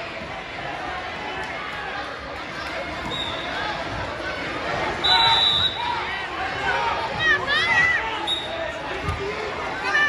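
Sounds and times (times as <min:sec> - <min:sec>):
people shouting in a gym: 0:00.0 - 0:10.0
referee's whistle: 0:03.0 - 0:03.6, 0:05.0 - 0:05.9, 0:08.2 - 0:08.6.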